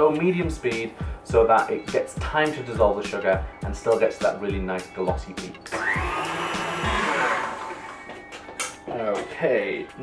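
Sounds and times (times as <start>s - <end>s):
stand mixer motor whir: 5.8s - 7.9s.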